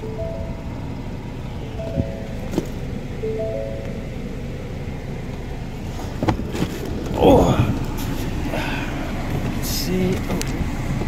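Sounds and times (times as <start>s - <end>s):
two-tone warning chime: 0.0s - 4.4s
car engine idling: 0.0s - 11.0s.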